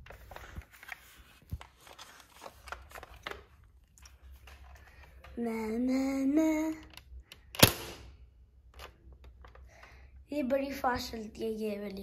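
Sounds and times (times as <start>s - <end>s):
handling clicks and rustling: 0.0s - 5.4s.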